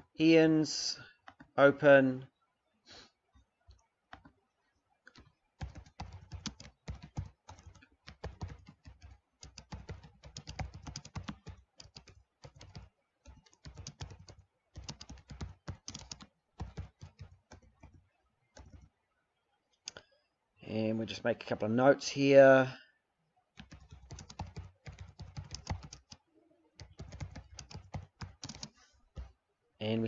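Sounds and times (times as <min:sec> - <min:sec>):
computer keyboard typing: 0:05.0 - 0:18.9, 0:23.6 - 0:26.2, 0:26.8 - 0:29.3.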